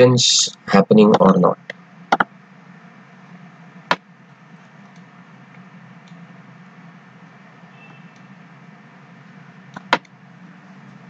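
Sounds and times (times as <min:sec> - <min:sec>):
low hum and faint hiss: 0:00.0 - 0:11.0.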